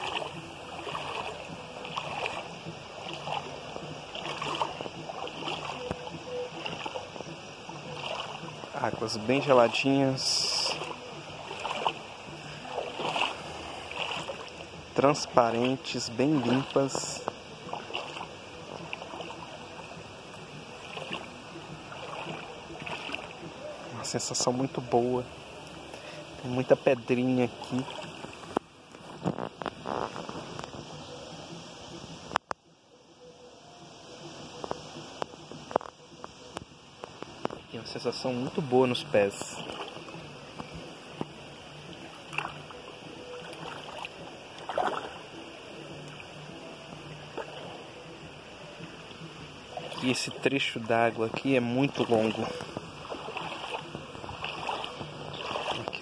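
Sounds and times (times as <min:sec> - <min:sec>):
water sloshing around steps: 0:00.0 - 0:31.6, 0:34.5 - 0:56.0
feet wading and splashing: 0:00.0 - 0:32.7, 0:33.5 - 0:56.0
stream running: 0:00.0 - 0:56.0.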